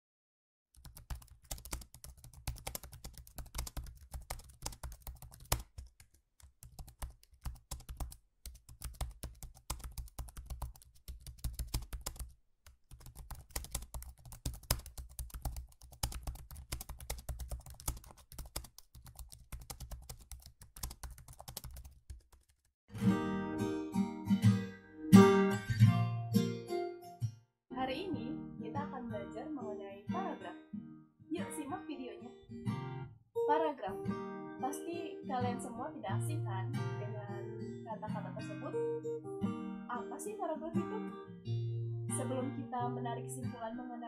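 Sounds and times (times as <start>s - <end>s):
rapid typing on keyboard: 0.8s - 12.3s, 12.9s - 22.7s.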